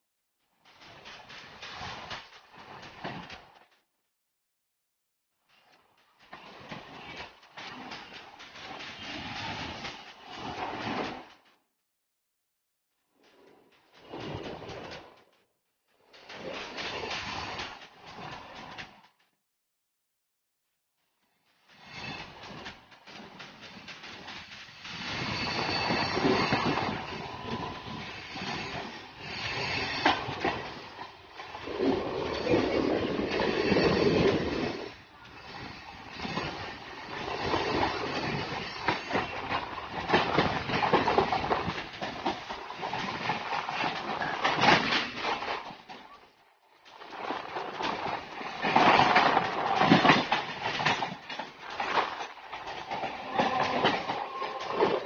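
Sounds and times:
train wheels clacking: 0:00.5 - 0:03.7, 0:05.4 - 0:11.6, 0:13.1 - 0:19.2, 0:21.2 - 0:55.0
electric train running noise: 0:21.4 - 0:46.2.

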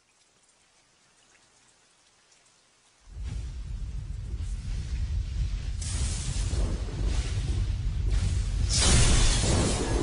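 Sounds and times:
faint rain drops: 0:00.0 - 0:10.0.

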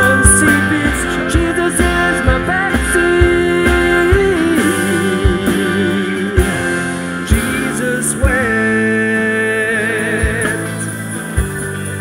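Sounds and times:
rock song: 0:00.0 - 0:12.0.

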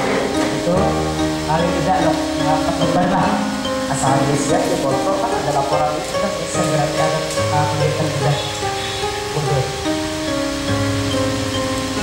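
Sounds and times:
held melodic notes: 0:00.0 - 0:12.0.

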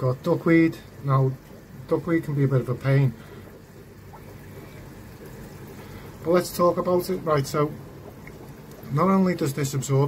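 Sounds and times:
aquarium water trickling: 0:00.0 - 0:10.0.

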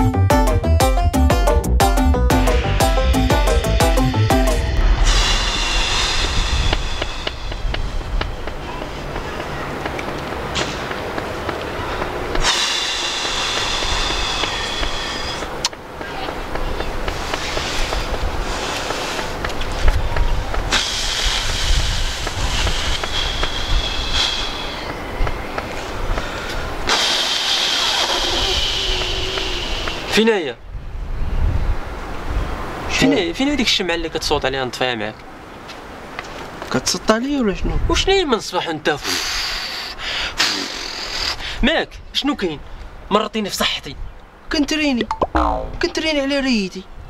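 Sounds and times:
theme music with drum hits: 0:00.0 - 0:04.8
steady low rumble: 0:00.0 - 0:17.3
outdoor background hiss: 0:01.5 - 0:47.0
man blowing air hard: 0:02.3 - 0:08.0, 0:12.4 - 0:15.5, 0:20.7 - 0:24.9, 0:26.8 - 0:30.1.

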